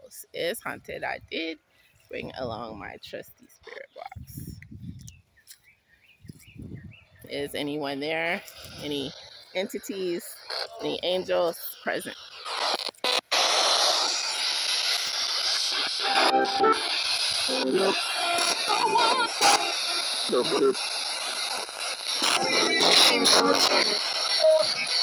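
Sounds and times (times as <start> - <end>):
snatches of broadcast voices: 0.0 - 5.1, 6.3 - 25.0
radio static hiss: 7.3 - 25.0.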